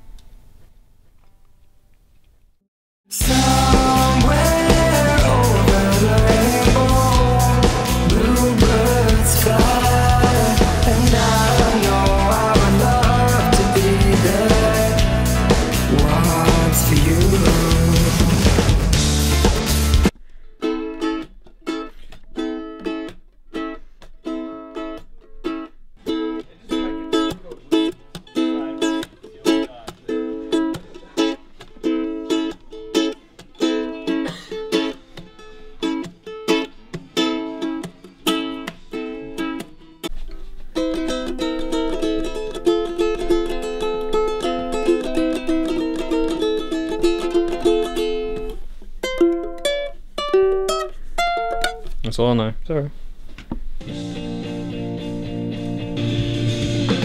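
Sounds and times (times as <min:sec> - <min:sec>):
string instrument strumming: 0:03.2 - 0:52.5, 0:53.8 - 0:57.0
single picked notes: 0:44.8 - 0:52.4.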